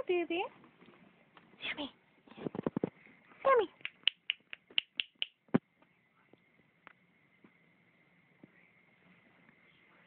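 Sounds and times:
sharp clicks: 0:03.8 - 0:05.4.

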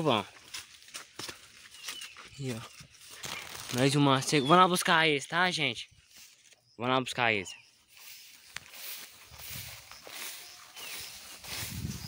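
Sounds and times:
footsteps through tall grass: 0:00.0 - 0:04.5, 0:06.0 - 0:06.7, 0:07.6 - 0:12.0
grass swishing and rustling: 0:07.9 - 0:12.0.

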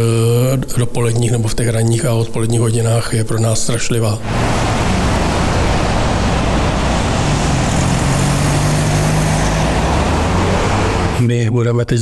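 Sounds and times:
cars passing: 0:04.2 - 0:11.2
low engine drone: 0:04.2 - 0:11.2.

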